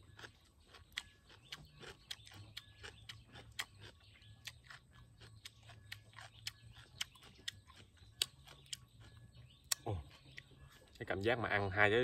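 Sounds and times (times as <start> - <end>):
crisp chewing clicks: 0.1 - 10.6.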